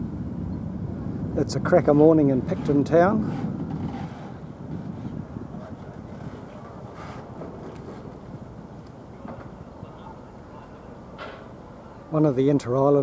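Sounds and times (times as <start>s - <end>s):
low outdoor rumble: 0.0s - 13.0s
wind buffeting microphone: 0.0s - 13.0s.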